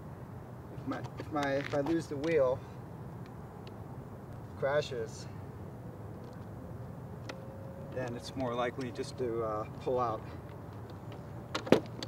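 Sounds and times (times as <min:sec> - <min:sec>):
residential street rumble: 0:00.0 - 0:12.0.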